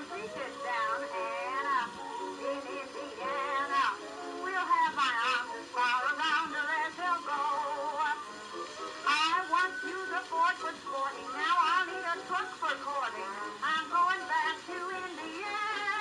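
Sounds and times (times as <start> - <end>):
woman singing with vibrato: 0.0 - 8.3, 9.0 - 16.0.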